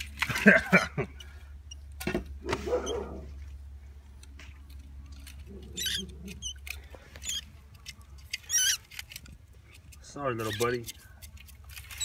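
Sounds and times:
mouse squeaking: 5.4s - 9.2s, 10.4s - 11.2s.

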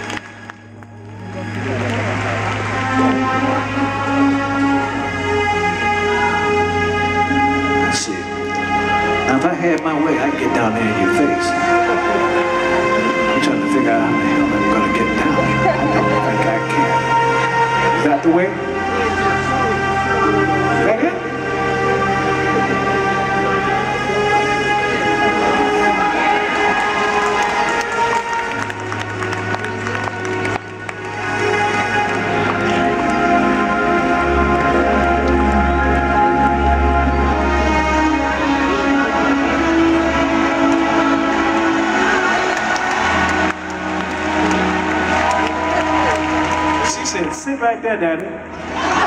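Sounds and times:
bass notes: 0.0s - 49.0s
keyboard chords: 0.0s - 49.0s.

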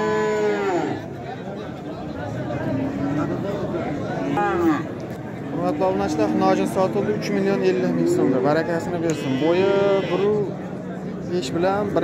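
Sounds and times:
cow mooing: 7.4s - 10.4s.

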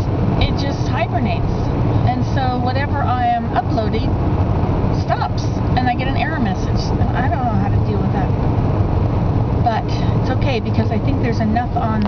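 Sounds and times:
woman talking: 0.0s - 4.1s, 5.0s - 8.3s, 9.6s - 12.0s
car engine rumble: 0.0s - 12.0s
road noise: 0.0s - 12.0s.

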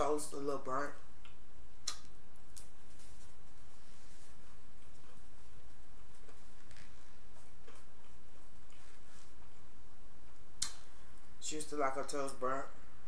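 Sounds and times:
low steady hum: 0.0s - 13.0s
person chewing food: 4.4s - 10.7s.

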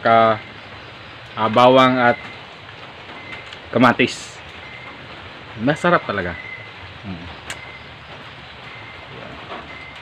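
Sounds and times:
steady rain: 0.0s - 10.0s.

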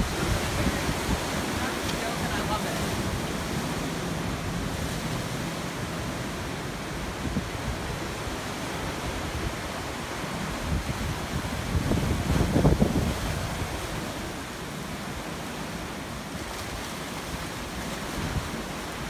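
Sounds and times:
surf breaking over rocks: 0.0s - 19.0s
wind on microphone: 0.0s - 19.0s.

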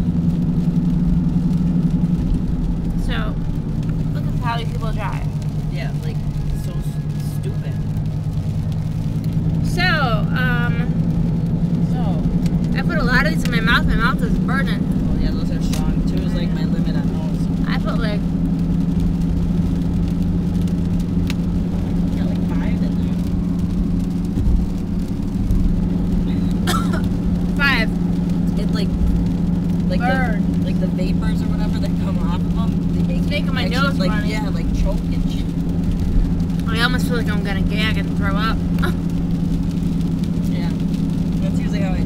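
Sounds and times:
engine and road noise in cabin: 0.0s - 42.0s.

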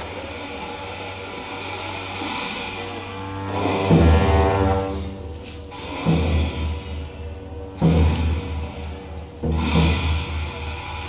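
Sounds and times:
low drone: 0.0s - 9.4s
drum and cymbal crash: 0.0s - 11.0s
long sustained horn tones: 2.9s - 5.7s.

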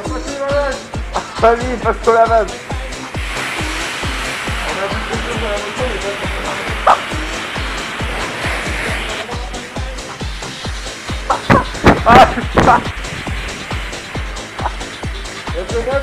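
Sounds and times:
background music with beat: 0.0s - 16.0s
pressure washer spraying water: 0.0s - 16.0s.

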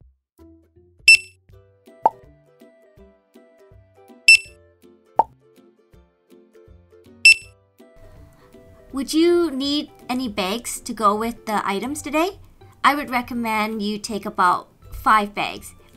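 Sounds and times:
checkout scanner beeps: 1.1s - 1.3s, 4.3s - 4.5s, 7.3s - 7.5s
soft background music: 1.1s - 15.9s.

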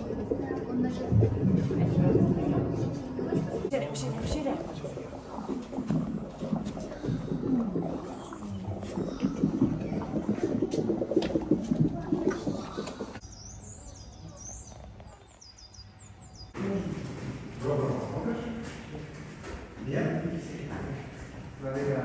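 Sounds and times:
indistinct chatter of people: 0.0s - 5.5s.

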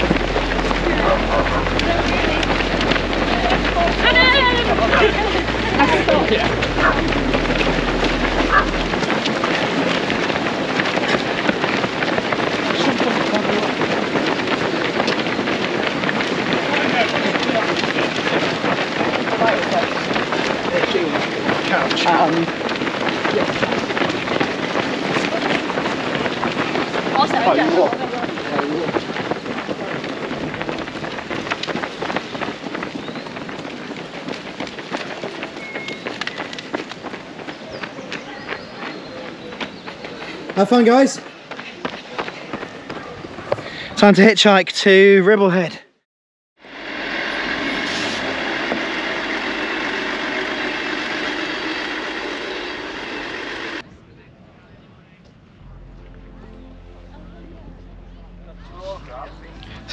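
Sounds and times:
runners' footsteps on tarmac: 0.0s - 45.8s, 47.5s - 53.9s
runners chattering and calling: 0.0s - 46.0s, 46.8s - 59.9s.

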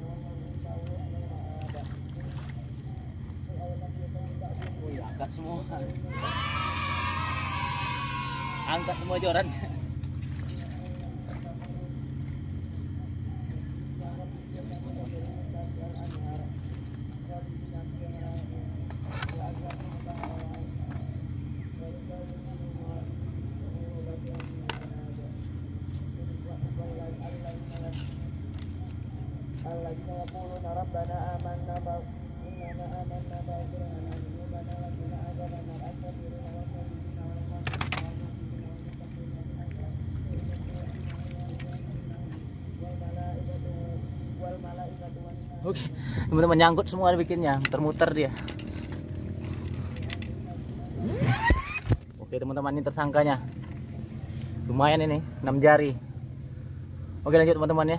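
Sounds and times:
low mechanical drone: 0.0s - 57.9s.

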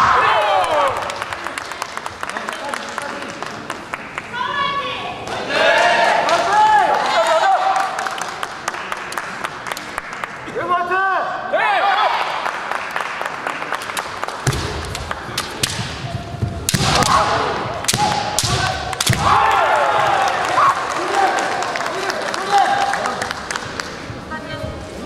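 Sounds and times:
bamboo swords cracking: 14.4s - 16.0s, 16.7s - 19.4s
fencers shouting: 16.7s - 21.4s.

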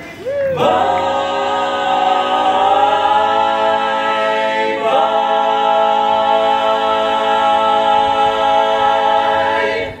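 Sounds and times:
barbershop quartet singing: 0.0s - 10.0s.

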